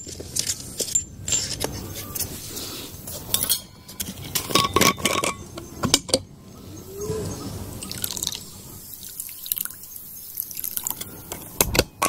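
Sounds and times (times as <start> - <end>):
water pouring into cup: 7.8 - 9.8.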